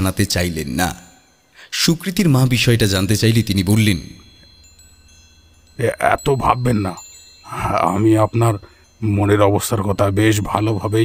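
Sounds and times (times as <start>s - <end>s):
person speaking: 0.0s - 4.4s, 5.8s - 11.0s
wind chimes ringing: 0.0s - 11.0s.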